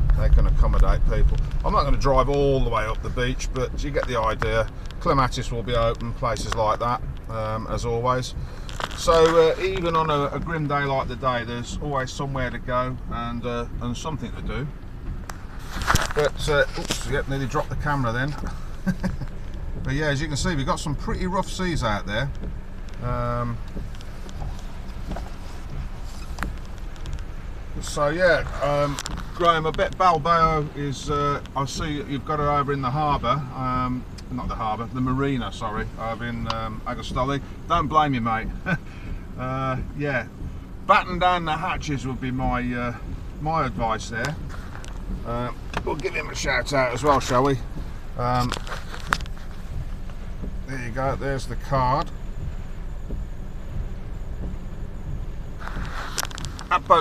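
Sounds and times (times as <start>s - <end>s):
car engine and tyre rumble: 0.0s - 57.0s
faint hiss: 0.0s - 57.0s.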